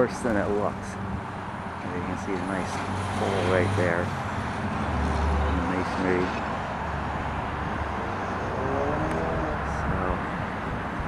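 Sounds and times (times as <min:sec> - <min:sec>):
low outdoor rumble: 0:07.8 - 0:11.0.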